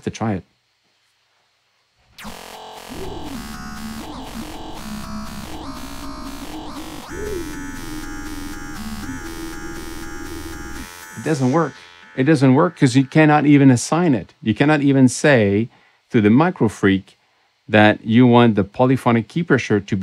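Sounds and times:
buzzy synth sweeping up and down: 0:02.2 - 0:14.1.

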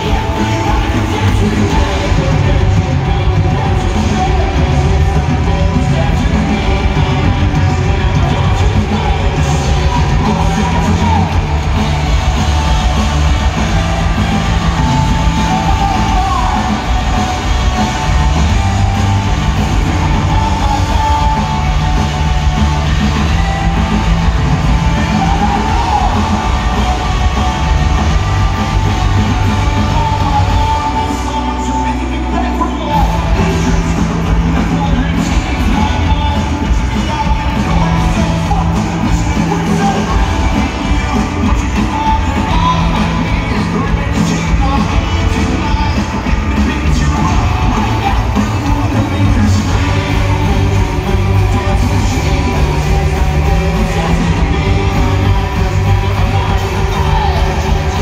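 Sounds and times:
bass guitar: 0:00.0 - 0:58.0
distorted electric guitar: 0:00.0 - 0:58.0
drums: 0:00.0 - 0:58.0.

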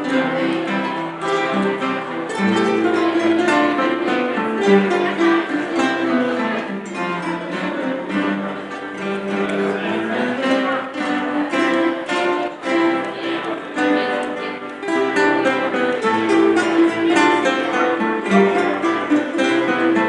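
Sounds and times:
classical guitar ensemble playing: 0:00.0 - 0:20.0.

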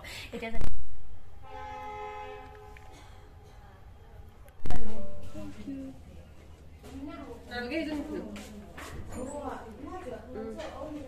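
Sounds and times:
steady horn-like tone: 0:01.3 - 0:03.1.

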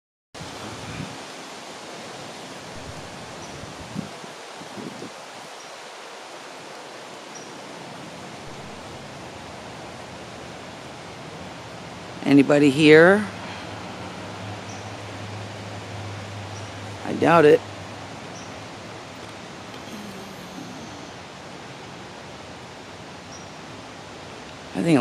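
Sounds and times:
background hiss: 0:00.4 - 0:25.0.

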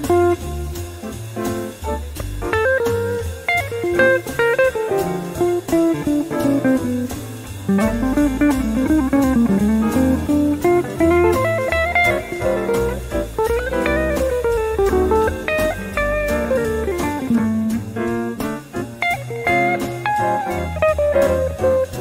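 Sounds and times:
backing track with bass line: 0:00.0 - 0:22.0
electric guitar jazz solo: 0:00.0 - 0:22.0.

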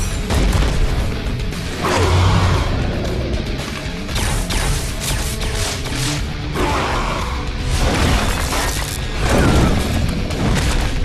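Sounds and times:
dramatic cartoon score: 0:00.0 - 0:11.0.

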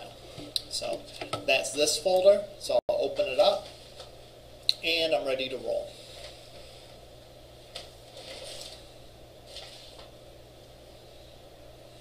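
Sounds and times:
steady low hum: 0:00.0 - 0:12.0
faint clicks and rustles: 0:07.6 - 0:10.2.

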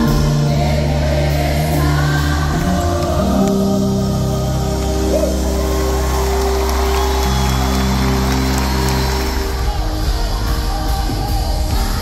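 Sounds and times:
crowd noise: 0:00.0 - 0:12.0
worship band playing: 0:00.0 - 0:12.0.

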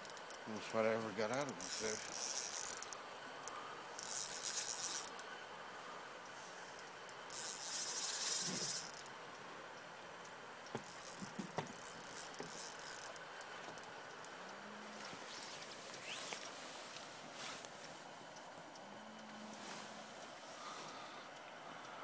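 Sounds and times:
fishing reel buzzing: 0:00.0 - 0:05.3, 0:07.1 - 0:09.1, 0:10.8 - 0:13.9.

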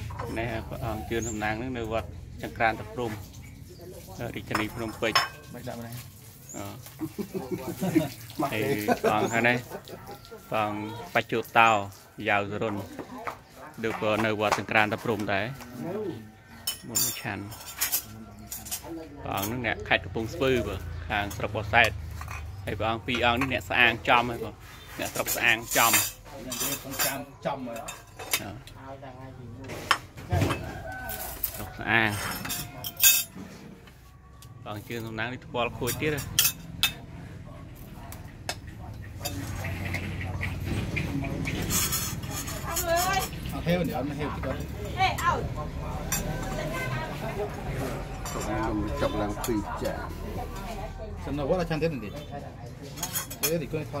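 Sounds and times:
spoons clinking on ceramic bowls: 0:04.3 - 0:06.1, 0:16.5 - 0:19.7, 0:24.9 - 0:28.7, 0:31.1 - 0:33.4, 0:35.8 - 0:37.1, 0:41.6 - 0:45.3, 0:46.0 - 0:46.6, 0:48.1 - 0:50.7, 0:52.9 - 0:53.8
low voices talking: 0:12.6 - 0:54.0.

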